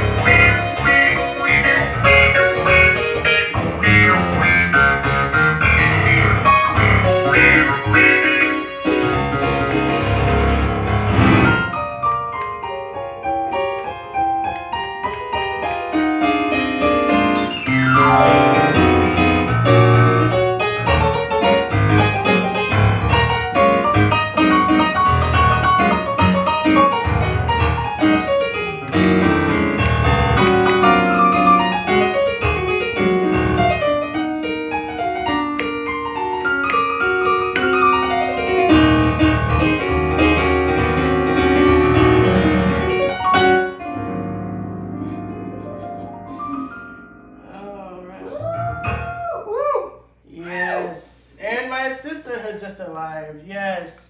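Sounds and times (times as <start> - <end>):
stage piano playing: 0.0 - 49.5.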